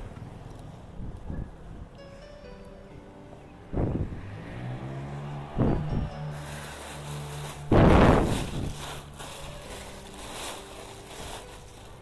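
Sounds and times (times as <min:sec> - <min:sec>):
background music with bass: 0:03.6 - 0:11.1
plastic bags rustling: 0:06.2 - 0:12.0.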